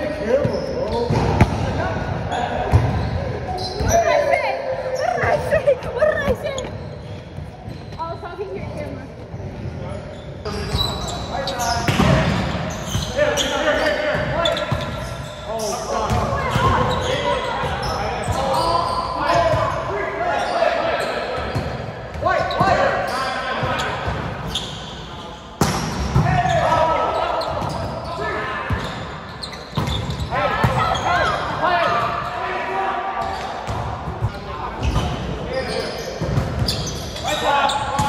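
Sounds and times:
players shouting and chatting: 0:00.0 - 0:38.0.

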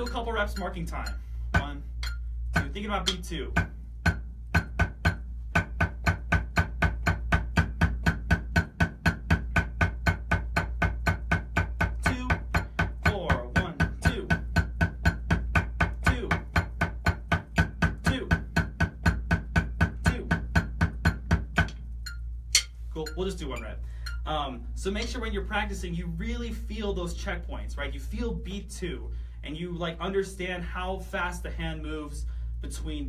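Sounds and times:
drumsticks on practice pad: 0:00.0 - 0:24.4.

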